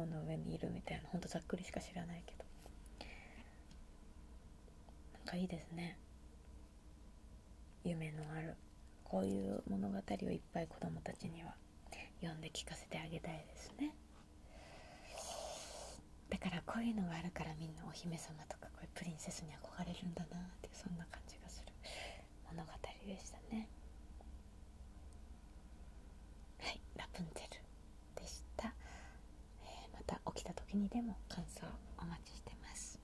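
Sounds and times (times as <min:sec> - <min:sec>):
woman whispering: 0:00.0 - 0:02.7, 0:05.1 - 0:06.0, 0:07.8 - 0:14.0, 0:15.1 - 0:21.8, 0:22.4 - 0:23.7, 0:26.6 - 0:28.8, 0:29.5 - 0:33.0
woman breathing: 0:03.0 - 0:03.7, 0:14.4 - 0:16.0, 0:21.8 - 0:22.4, 0:28.8 - 0:29.3.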